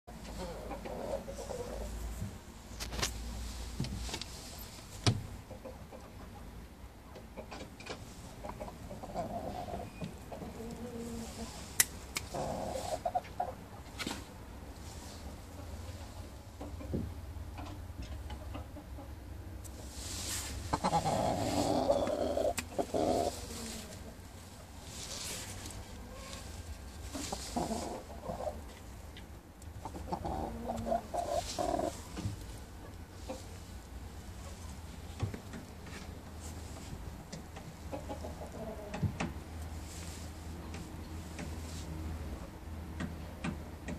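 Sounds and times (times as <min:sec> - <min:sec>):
rooster clucking: 0:00.1 - 0:02.1, 0:07.3 - 0:13.9, 0:20.4 - 0:24.3, 0:25.1 - 0:33.6, 0:37.8 - 0:39.1.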